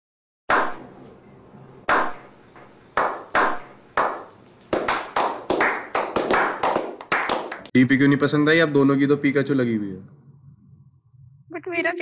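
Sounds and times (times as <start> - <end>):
echoing hand claps: 0.5 - 0.9, 1.9 - 7.8
people clapping: 1.9 - 2.2, 3.0 - 7.8.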